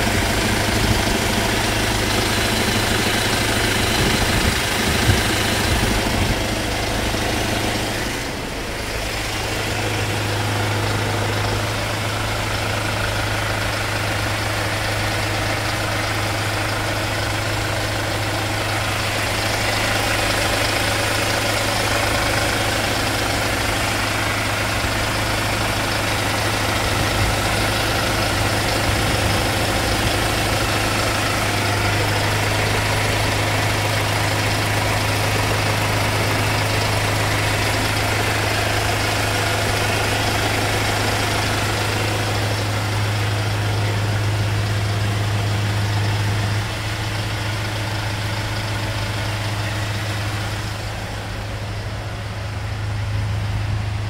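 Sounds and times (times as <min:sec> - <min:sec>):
van engine idling: 0:00.0 - 0:54.0.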